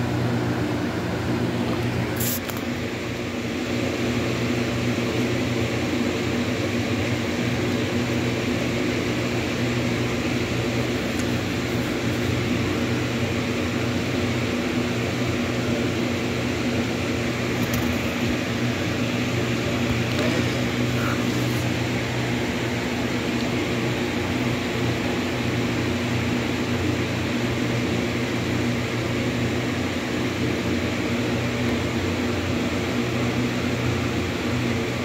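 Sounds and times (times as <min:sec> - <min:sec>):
mechanical motor hum: 0:00.0 - 0:35.0.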